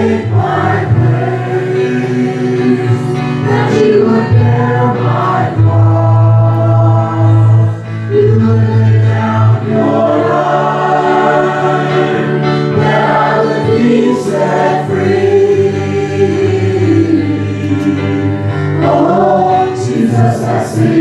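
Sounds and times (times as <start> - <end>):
group singing in harmony: 0.0 - 21.0
keyboard accompaniment: 0.0 - 21.0.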